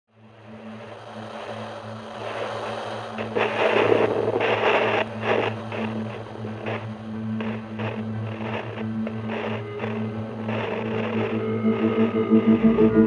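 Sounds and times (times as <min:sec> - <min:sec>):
hiss of noise: 0:00.2 - 0:13.0
low hum: 0:00.2 - 0:13.0
rough surges: 0:02.2 - 0:13.0.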